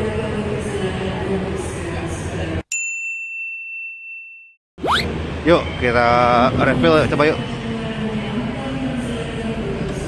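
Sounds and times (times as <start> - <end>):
crowd noise in a station hall: 0.0 - 2.6, 5.1 - 10.0
high ding sound effect: 4.8 - 5.1.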